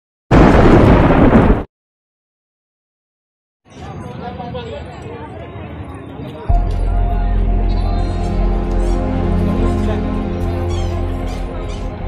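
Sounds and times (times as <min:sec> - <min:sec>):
loud explosion blast: 0:00.3 - 0:01.7.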